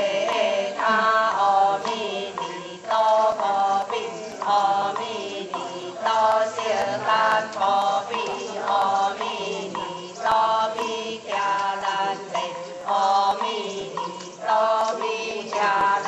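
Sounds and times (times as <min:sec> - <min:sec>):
repeated ritual chanting: 0:00.0 - 0:16.0.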